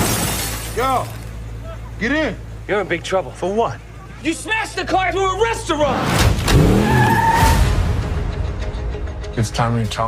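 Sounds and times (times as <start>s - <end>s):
glass shattering crash: 0.0s - 1.3s.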